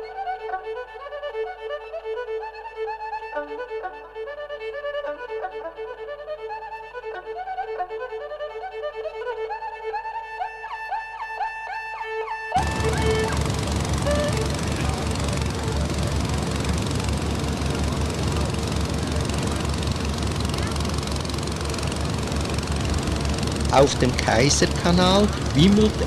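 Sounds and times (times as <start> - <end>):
violin music: 0.0 - 26.0
boat engine thudding: 12.6 - 26.0.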